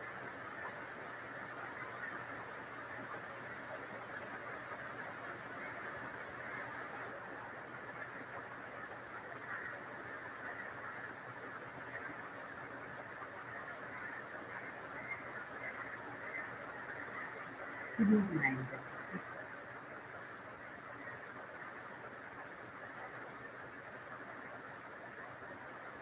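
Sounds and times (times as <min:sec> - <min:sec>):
faint room tone hiss: 0:00.0 - 0:26.0.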